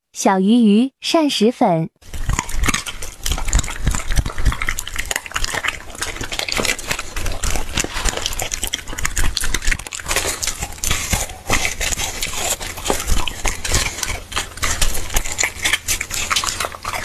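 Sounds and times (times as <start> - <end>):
dog chewing and crunching food: 2.0 - 17.0.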